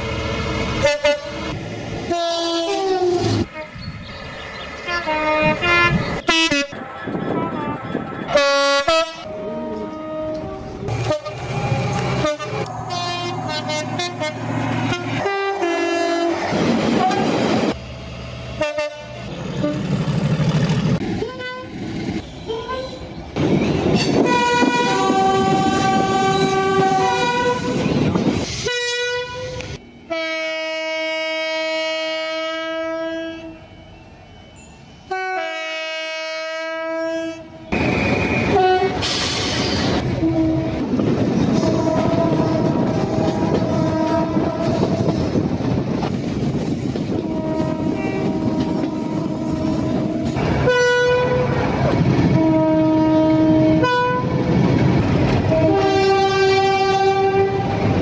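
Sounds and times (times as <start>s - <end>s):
train coaches rumbling on track: 0.0s - 58.0s
train two-tone horn blasts: 0.8s - 3.8s, 4.9s - 16.4s, 17.0s - 17.4s, 18.6s - 20.0s, 21.2s - 21.8s, 23.9s - 28.0s, 28.6s - 33.7s, 35.1s - 45.3s, 47.1s - 51.6s, 52.2s - 54.5s, 55.3s - 58.0s.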